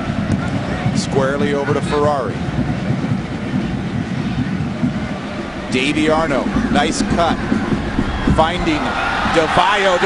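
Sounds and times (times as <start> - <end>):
stadium crowd din: 0.0 - 10.0.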